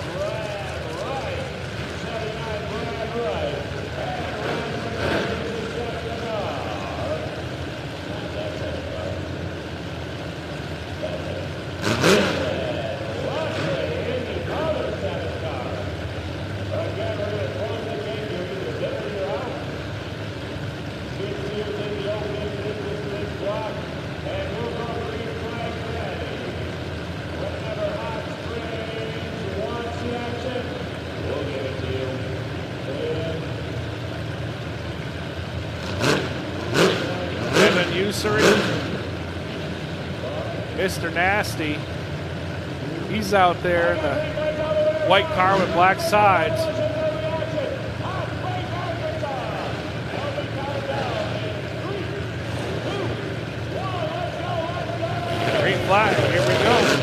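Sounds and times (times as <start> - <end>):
car engines idling and revving: 0.0 - 57.0
murmur of voices: 36.4 - 57.0.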